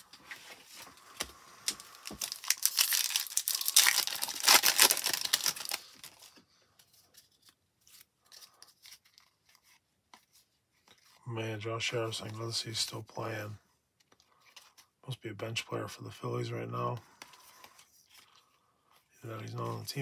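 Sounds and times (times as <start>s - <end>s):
wrapper torn and crinkled: 1.7s - 6.3s.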